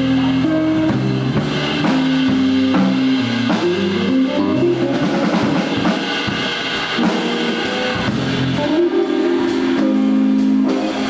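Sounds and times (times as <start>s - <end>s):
jazz fusion band sustained chords: 0.0s - 11.0s.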